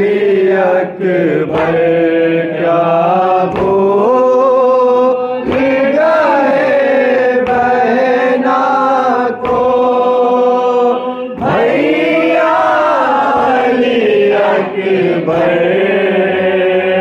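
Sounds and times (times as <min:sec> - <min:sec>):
man chanting a lament: 0:00.0 - 0:17.0.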